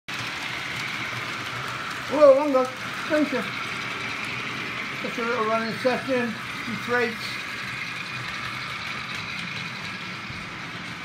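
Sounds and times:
model train running on track: 0.1s - 11.0s.

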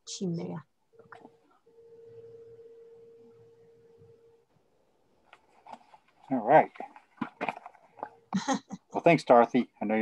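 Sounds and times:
faint pure tone: 0.0s - 5.0s.

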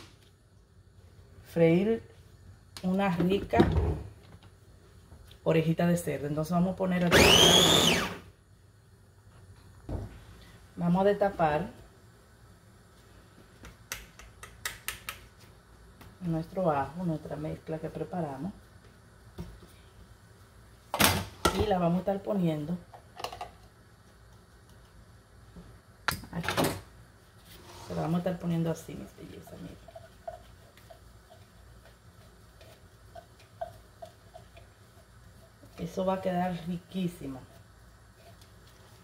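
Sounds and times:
food chopper motor spinning down: 7.1s - 8.2s.

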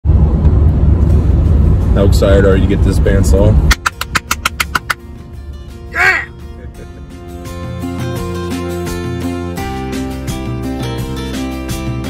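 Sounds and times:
background music: 1.1s - 12.0s
rapid hand clapping: 3.7s - 5.0s
high whooping cry: 5.9s - 6.3s.

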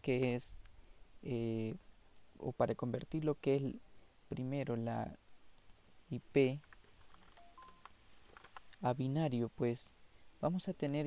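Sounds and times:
keyboard key presses: 6.6s - 8.7s
short faint beeps: 7.4s - 7.9s.

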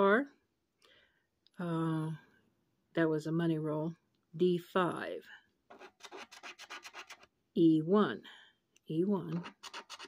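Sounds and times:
coin scratching lottery ticket: 5.7s - 7.3s, 9.3s - 10.0s
person speaking: 8.9s - 10.0s.

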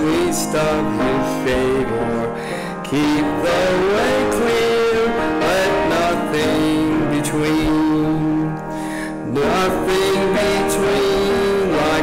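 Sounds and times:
man singing a hymn: 0.0s - 12.0s
piano accompaniment: 0.0s - 12.0s.

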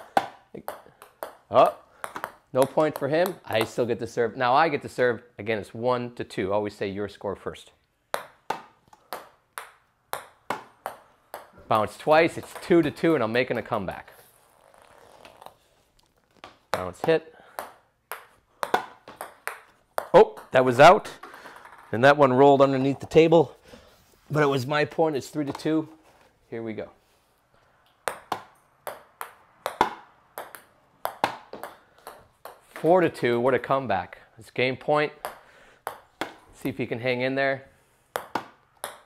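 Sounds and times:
ping pong ball bouncing on floor: 0.0s - 3.8s, 8.1s - 13.0s, 16.4s - 21.9s, 28.0s - 32.9s, 35.2s - 36.4s, 38.1s - 39.0s
paddles hitting ping pong ball: 0.0s - 3.9s, 8.1s - 13.8s, 16.3s - 22.2s, 27.8s - 33.4s, 35.1s - 36.5s, 38.1s - 39.0s.

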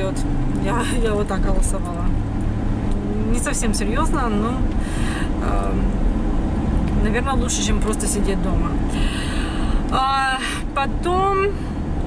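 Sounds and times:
car cabin road rumble: 0.0s - 12.0s.

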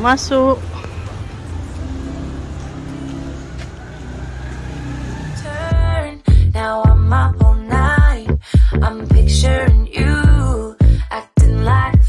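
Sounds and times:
vehicle engine rumbling: 0.0s - 11.0s.

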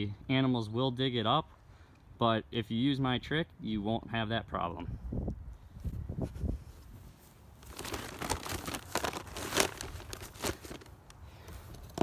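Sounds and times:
feed sack crinkling: 7.6s - 11.1s.

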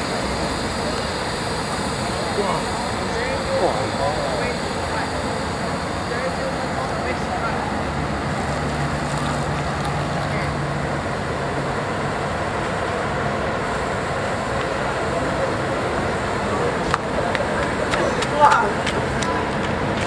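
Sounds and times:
bus diesel engine idling: 0.0s - 20.0s.

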